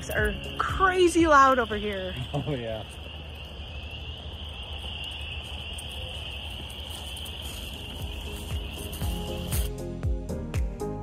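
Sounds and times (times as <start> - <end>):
chorus of frogs trilling: 0.0 - 9.6.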